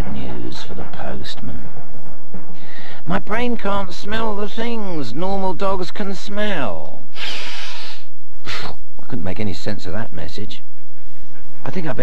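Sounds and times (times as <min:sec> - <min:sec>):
loud nose sniffing: 0:07.2 - 0:08.8.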